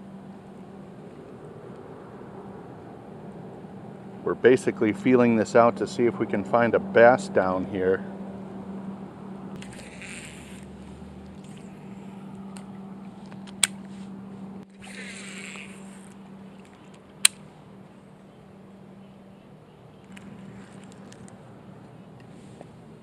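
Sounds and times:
steady low hum: 0.0s - 23.0s
fishing reel winding: 9.6s - 10.7s, 14.8s - 16.2s.

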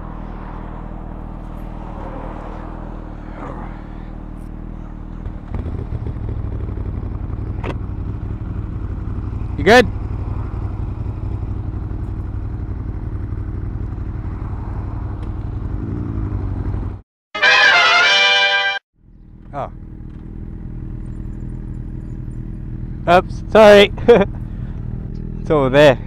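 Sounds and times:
motorcycle engines idling: 0.0s - 17.0s, 19.0s - 26.0s
loud pitched tone: 17.4s - 18.8s.

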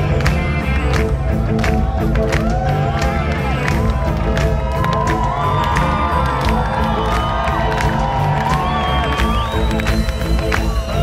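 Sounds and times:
crowd cheering: 0.0s - 11.0s
rock band playing: 0.0s - 11.0s.

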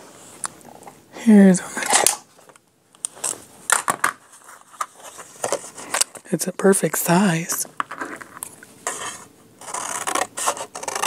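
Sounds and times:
scissors cutting paper: 8.9s - 11.0s.

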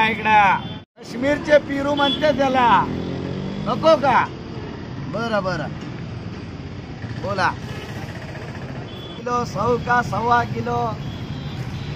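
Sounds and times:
street background noise: 0.0s - 11.9s.

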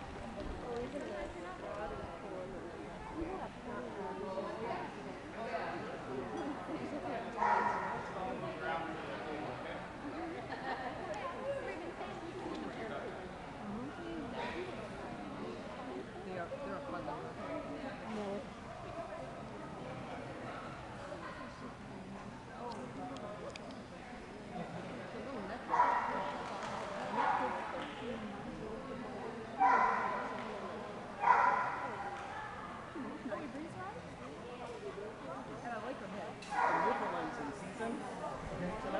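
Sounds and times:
murmur of voices: 0.0s - 38.9s
people chattering in a hall: 0.0s - 38.9s
dog barking: 7.4s - 7.9s, 29.6s - 30.2s, 31.2s - 31.9s, 36.6s - 37.0s.

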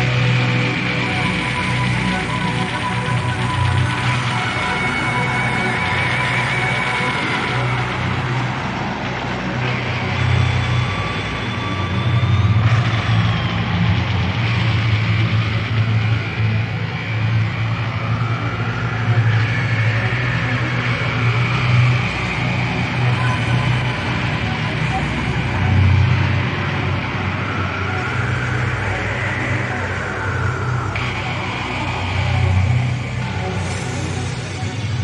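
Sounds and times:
distorted electric guitar: 0.0s - 35.0s.

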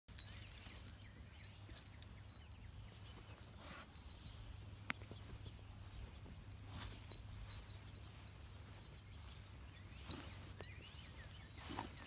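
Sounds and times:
dog collar tags jingling: 0.1s - 12.0s
dog walking through grass: 0.1s - 12.0s.

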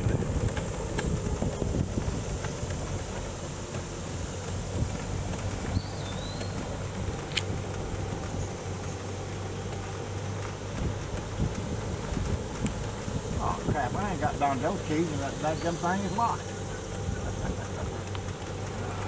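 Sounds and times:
car engine and tyre hum: 0.0s - 19.0s.

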